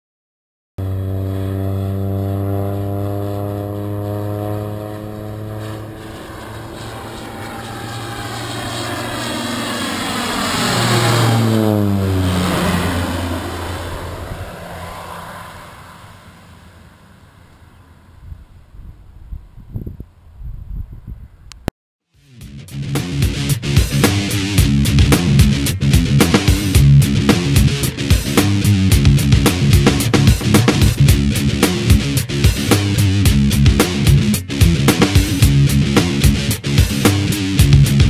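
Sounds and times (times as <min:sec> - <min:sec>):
airplane engine flying overhead: 0:00.8 - 0:21.6, 0:22.2 - 0:38.0.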